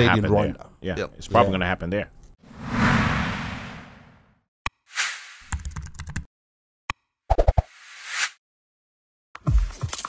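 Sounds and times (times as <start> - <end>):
rising whoosh: 2.5 - 4.3.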